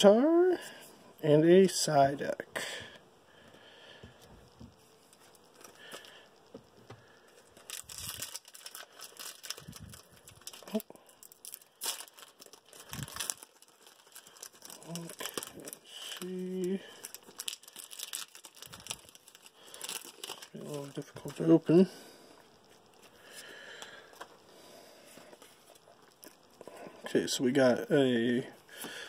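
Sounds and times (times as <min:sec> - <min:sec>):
foil wrapper crinkling and tearing: 0:07.0 - 0:21.9.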